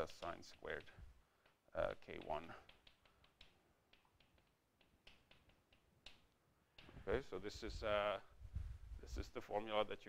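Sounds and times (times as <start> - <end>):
chalk tapping on blackboard: 0.0 - 7.1.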